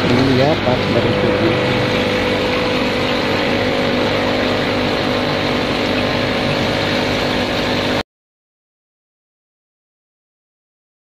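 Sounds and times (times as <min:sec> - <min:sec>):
aquarium pumps humming: 0:00.0 - 0:08.0.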